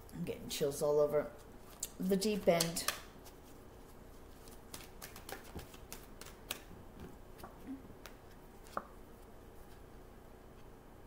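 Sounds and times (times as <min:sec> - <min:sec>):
cards being shuffled: 0:04.3 - 0:09.8.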